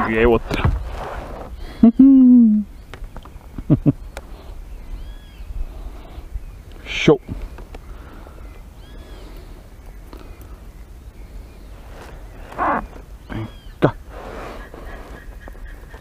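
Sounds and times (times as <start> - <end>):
bird calls: 0.0 - 16.0
whistled bird notes: 3.9 - 5.6, 7.2 - 13.8.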